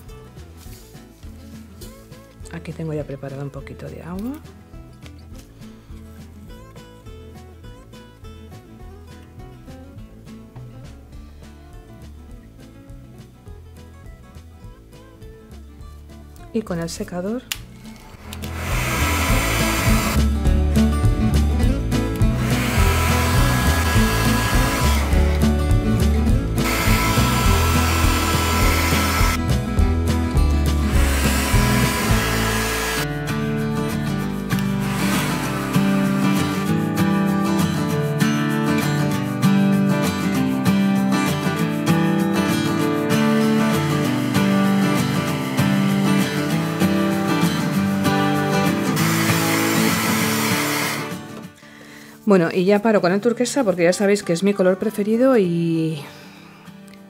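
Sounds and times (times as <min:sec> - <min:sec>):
background music: 0:00.0 - 0:57.0
hair dryer blowing: 0:18.2 - 0:20.2, 0:22.4 - 0:25.4, 0:26.6 - 0:29.4, 0:30.9 - 0:33.1, 0:34.8 - 0:36.7, 0:48.9 - 0:51.2.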